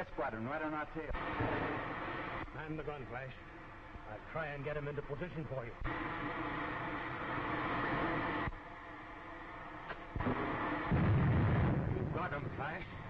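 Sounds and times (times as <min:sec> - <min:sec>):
rocket ship engine: 0:01.0 - 0:03.3, 0:09.4 - 0:13.0
low rumbling explosion: 0:10.2 - 0:12.8.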